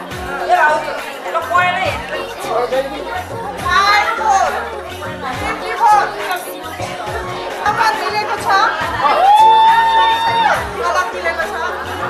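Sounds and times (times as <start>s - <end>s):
music playing in a hall: 0.0s - 12.0s.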